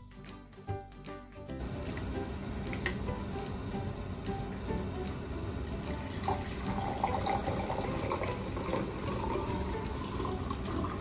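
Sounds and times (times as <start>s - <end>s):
water pouring into glass: 6.0s - 11.0s.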